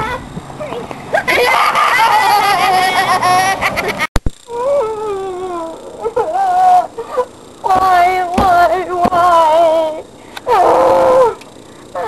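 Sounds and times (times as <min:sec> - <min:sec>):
person's wordless whining cry: 0:04.5 - 0:08.7, 0:09.3 - 0:11.4.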